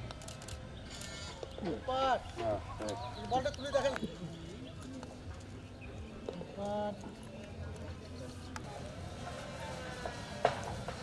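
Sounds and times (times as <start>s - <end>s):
faint talk of people: 0.0s - 11.0s.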